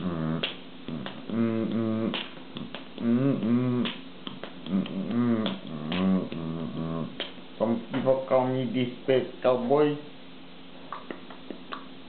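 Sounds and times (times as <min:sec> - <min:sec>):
man vocalizing wordlessly: 0:00.0 - 0:09.9
finger snaps: 0:00.4 - 0:01.4, 0:02.0 - 0:06.5, 0:10.9 - 0:11.9.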